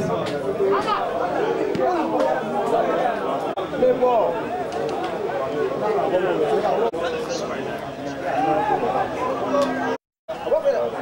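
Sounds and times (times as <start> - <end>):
chatter of voices: 0.0 - 11.0.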